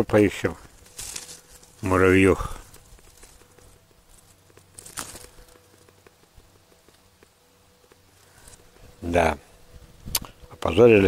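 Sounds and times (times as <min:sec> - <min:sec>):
leaves and twigs rustling: 0:00.0 - 0:11.0.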